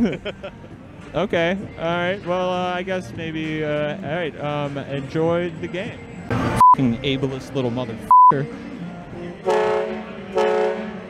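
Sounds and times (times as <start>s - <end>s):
riverboat horn blasts: 9.4s - 11.0s.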